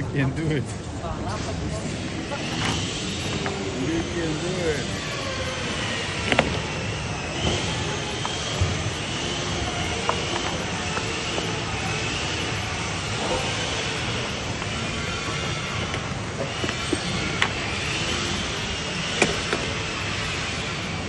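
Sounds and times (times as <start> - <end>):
din of busy indoor hall: 0.0 - 21.0.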